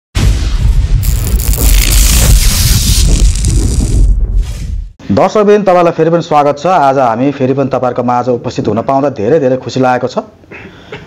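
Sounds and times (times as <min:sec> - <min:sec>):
deep thunder rumble: 0:00.2 - 0:04.9
rain hiss: 0:01.0 - 0:04.1.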